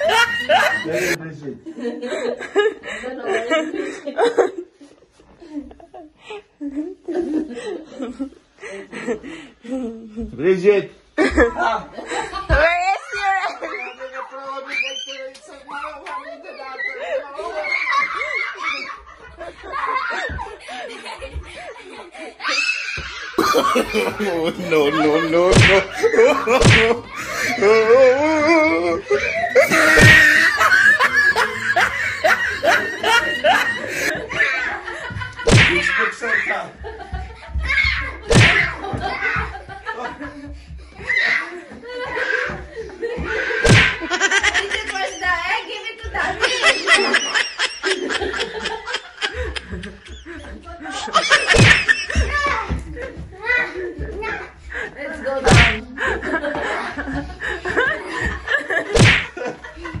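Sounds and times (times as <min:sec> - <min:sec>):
laughter: 0:00.0 - 0:09.9, 0:11.2 - 0:14.2, 0:16.2 - 0:36.1, 0:36.7 - 0:37.8, 0:38.6 - 0:40.6, 0:41.4 - 1:00.0
person laughing hard: 0:23.4 - 0:25.1, 0:25.7 - 0:34.2.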